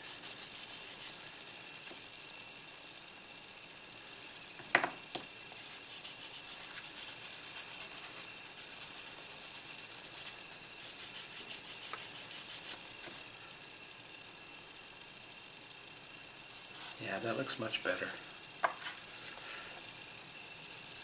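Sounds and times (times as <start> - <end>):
sanding sponge rubbing plastic: 0.0 - 2.0, 5.4 - 13.2, 16.5 - 17.0, 18.8 - 21.0.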